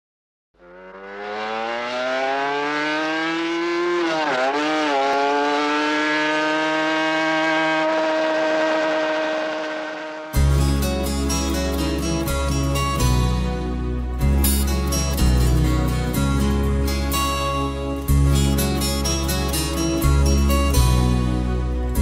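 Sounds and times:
motorcycle engine accelerating: 0:00.6 - 0:13.0.

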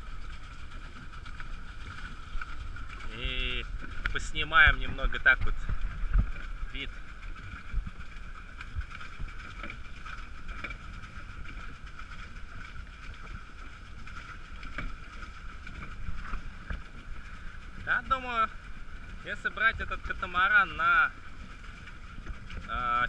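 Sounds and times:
water and wind noise: 0:00.0 - 0:23.0.

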